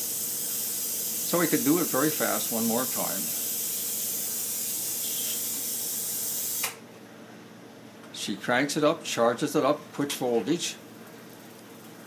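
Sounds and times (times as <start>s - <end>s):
high-voltage device hissing: 0.0s - 6.8s.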